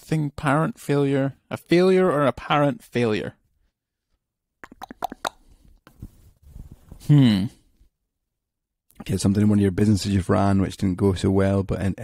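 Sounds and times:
mouth clicks and lip smacks: 4.6s - 6.0s.

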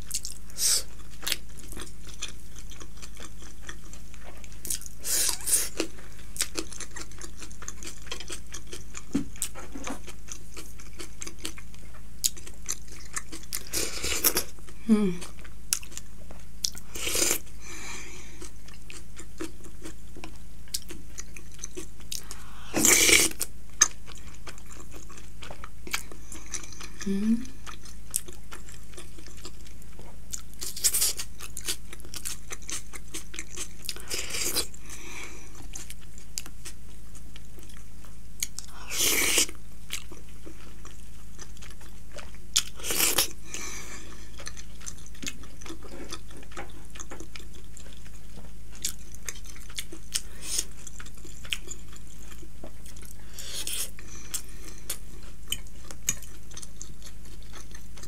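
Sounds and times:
close chewing and biting: 0.0s - 17.4s, 18.2s - 58.0s.

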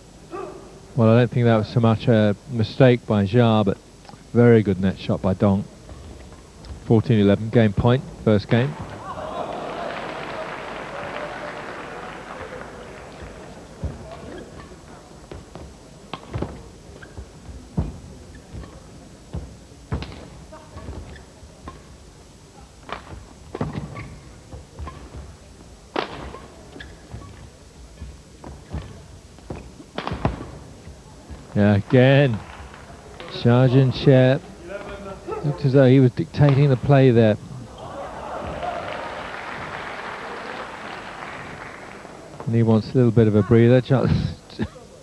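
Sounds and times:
audience applauding: 9.0s - 13.8s, 37.8s - 42.4s
footfalls on court: 12.2s - 21.9s, 37.7s - 42.5s
shoe squeaks: 13.2s - 22.0s, 23.6s - 25.4s, 26.1s - 31.0s.

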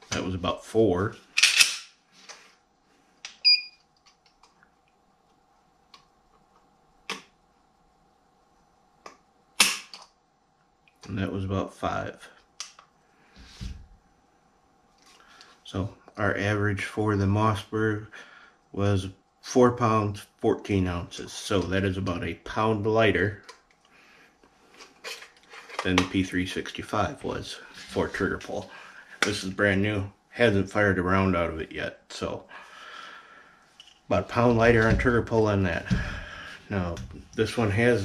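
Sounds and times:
man's voice: 34.1s - 38.0s.

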